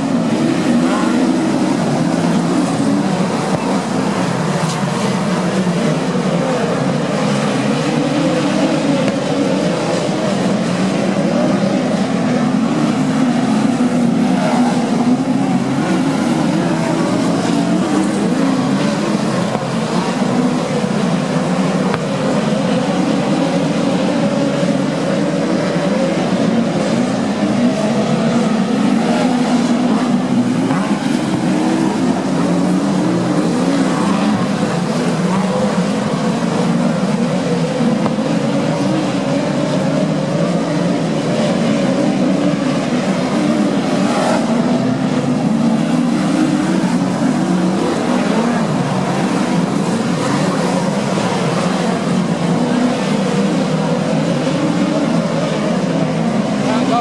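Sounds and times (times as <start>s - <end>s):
race car engines droning: 0.0s - 57.0s.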